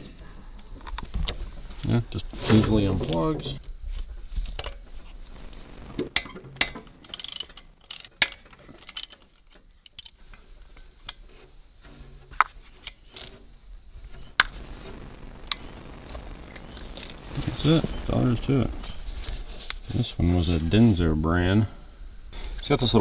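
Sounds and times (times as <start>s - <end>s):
socket ratchet clicking: 6.2s - 9.2s, 9.8s - 10.2s.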